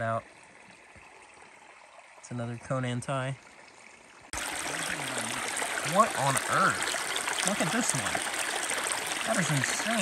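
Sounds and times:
creek water running: 0.0 - 10.0.

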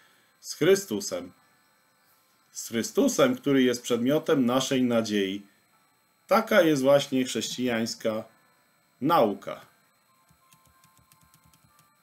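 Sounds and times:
faint rapid ticking: 10.2 - 12.0.

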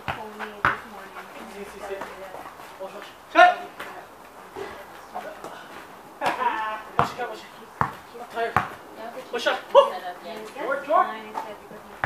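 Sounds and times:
basketball dribbling on court: 0.0 - 2.1, 7.0 - 8.8.

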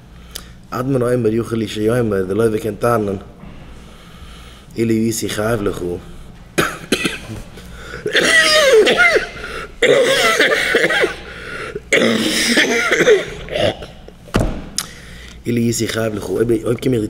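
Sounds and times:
man coughing: 6.6 - 14.2
short thump: 14.3 - 14.8.

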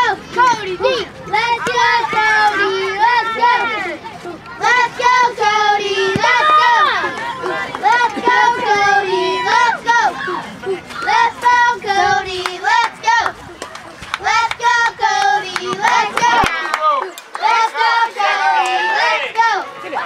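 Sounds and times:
children chanting a cheer: 0.0 - 20.0.

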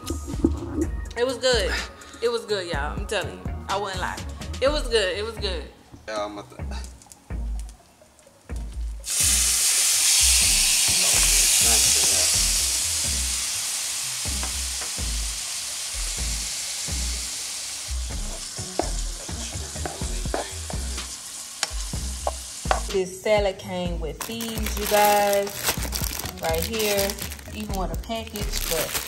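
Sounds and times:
shrimp sizzling in skillet: 9.0 - 23.2, 24.2 - 29.0.

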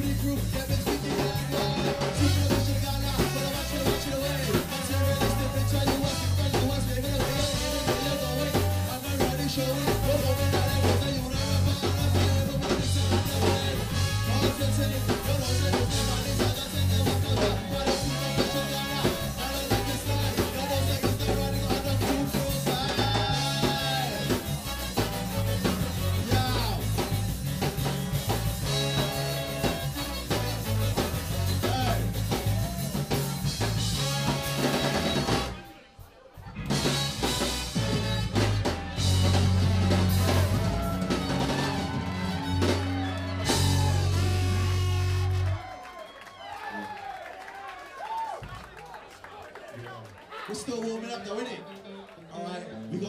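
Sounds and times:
live ska band playing: 0.0 - 47.0.

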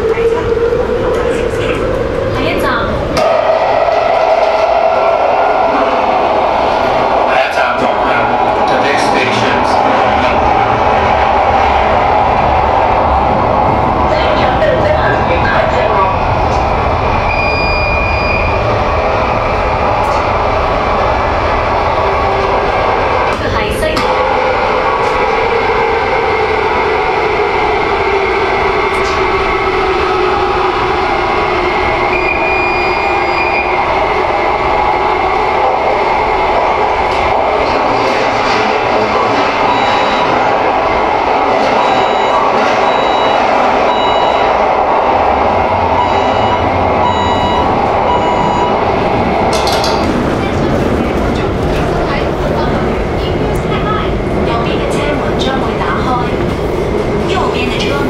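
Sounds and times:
train wheels rumbling on rails: 0.0 - 58.0.

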